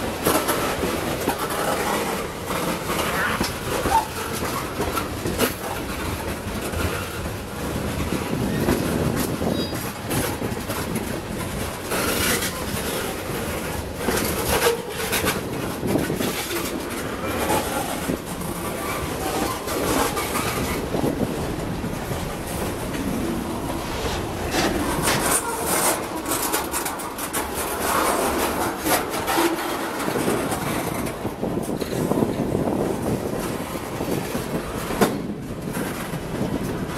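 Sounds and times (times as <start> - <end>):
freight train wheels rumbling on rail: 0.0 - 36.9
wheels clacking over rail joints: 0.0 - 36.9.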